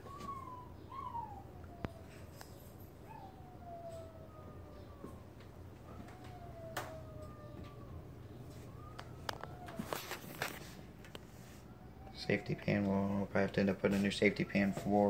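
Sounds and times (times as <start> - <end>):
animal whining: 0.0 - 10.6, 11.5 - 15.0.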